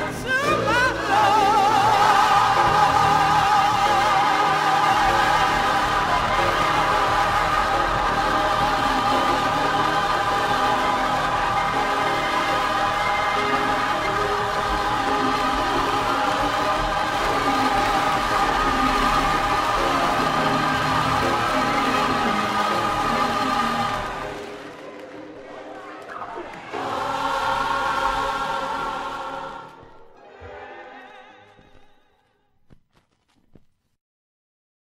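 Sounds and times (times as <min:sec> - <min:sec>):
choir singing held chords: 0:00.0 - 0:32.2.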